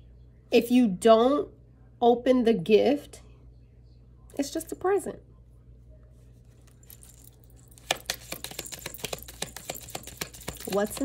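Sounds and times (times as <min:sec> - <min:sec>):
cards being shuffled: 0:06.4 - 0:11.0.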